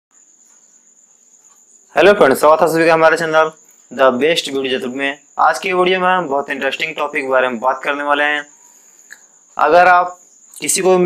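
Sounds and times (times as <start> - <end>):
background hiss: 0.1 - 11.0
man speaking: 1.9 - 8.5, 9.6 - 11.0.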